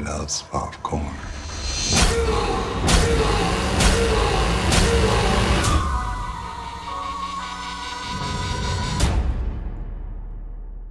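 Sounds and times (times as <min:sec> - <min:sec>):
sharp hits: 0:01.3 - 0:07.2.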